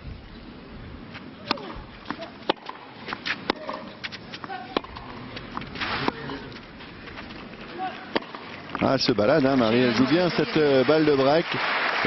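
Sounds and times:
tennis racquets hitting ball: 0:01.2 - 0:10.4
shoes scuffing on clay: 0:02.6 - 0:08.1.

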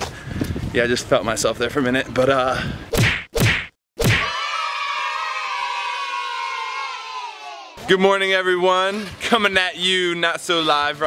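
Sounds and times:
several voices cheering: 0:04.2 - 0:07.8.

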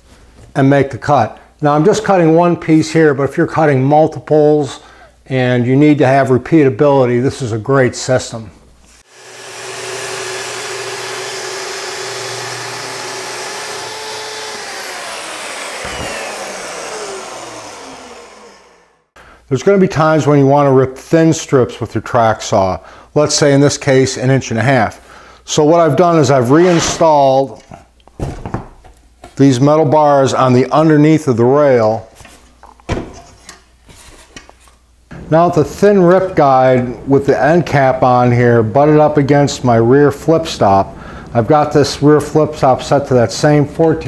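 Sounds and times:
dust extractor: 0:09.0 - 0:19.1
circular saw cutting wood: 0:09.0 - 0:19.2
saw spinning down: 0:09.0 - 0:19.2.

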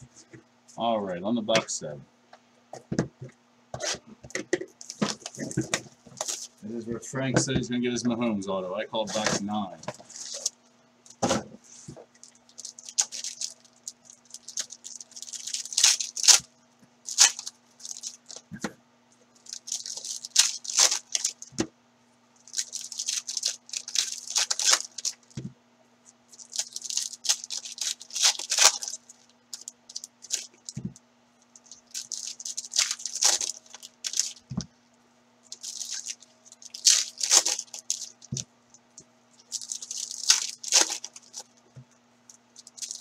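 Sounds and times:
foil wrappers tearing and crinkling: 0:04.8 - 0:06.5, 0:10.0 - 0:10.6, 0:11.8 - 0:16.5, 0:17.1 - 0:18.4, 0:19.4 - 0:21.6, 0:22.4 - 0:25.4, 0:26.3 - 0:31.0, 0:31.6 - 0:34.6, 0:35.5 - 0:38.5, 0:39.4 - 0:41.6, 0:42.6 - 0:43.0.

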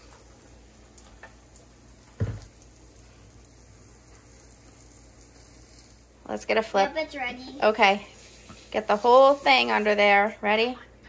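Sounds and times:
batter sizzling on a pan: 0:00.0 - 0:10.8
dull thump: 0:02.2 - 0:02.5.

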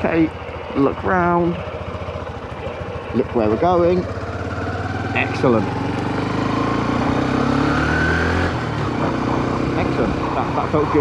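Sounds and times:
motorcycle engine accelerating: 0:00.0 - 0:11.0.

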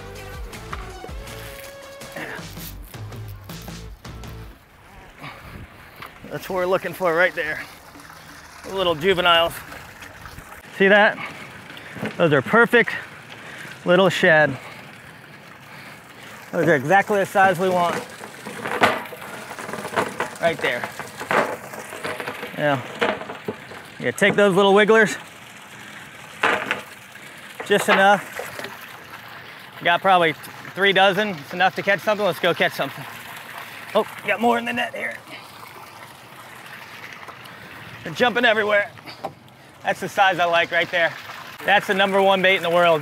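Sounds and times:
water trickling: 0:00.0 - 0:43.0
faint small splashes: 0:04.5 - 0:43.0
weights dropping into water: 0:17.2 - 0:24.9, 0:26.3 - 0:29.0
lead weights clattering on rim: 0:17.6 - 0:24.7.

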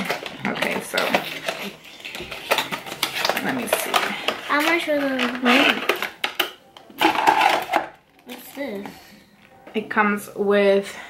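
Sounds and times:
cardboard box and plastic rustling: 0:00.0 - 0:06.3.

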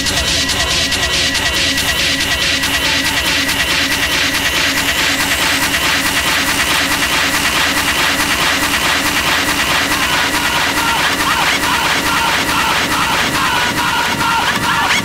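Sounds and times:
driving electronic beat: 0:00.0 - 0:15.0.

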